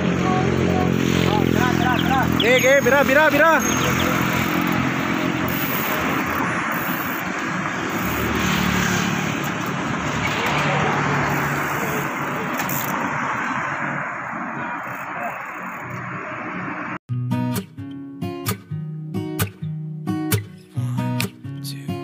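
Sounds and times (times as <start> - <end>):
indistinct voices: 0.0 - 6.6, 10.2 - 17.0
roadside traffic noise: 0.0 - 17.1.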